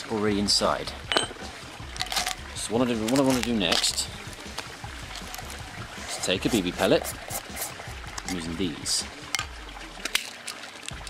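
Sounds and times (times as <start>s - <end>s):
faint trickle of water: 0.0s - 11.0s
metallic clicks of pellets and tin: 2.0s - 2.4s, 3.0s - 5.6s, 9.3s - 11.0s.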